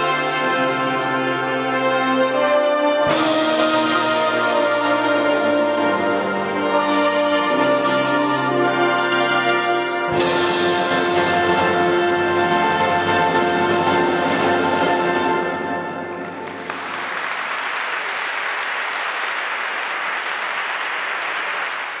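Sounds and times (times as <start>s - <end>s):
audience applause: 16.1s - 22.0s.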